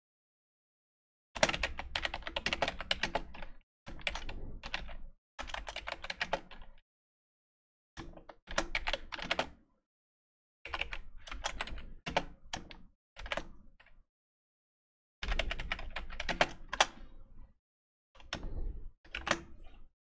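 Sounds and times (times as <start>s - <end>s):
computer keyboard typing: 1.4s - 6.6s, 8.6s - 9.5s, 10.7s - 12.3s, 15.2s - 16.8s, 19.1s - 19.4s.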